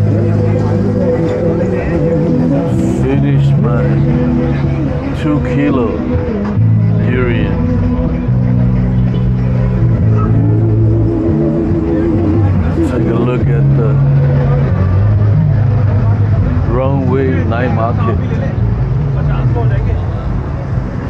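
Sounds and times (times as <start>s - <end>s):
loud music with deep bass line: 0.0s - 21.0s
murmur of voices: 0.0s - 21.0s.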